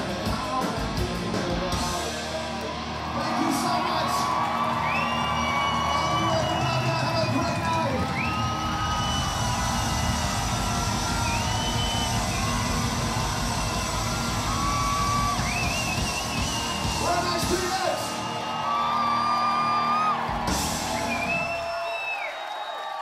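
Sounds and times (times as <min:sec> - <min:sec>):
punk band playing live: 0:00.0 - 0:03.1, 0:05.9 - 0:18.4, 0:20.1 - 0:21.6
crowd cheering and shouting: 0:00.0 - 0:23.0.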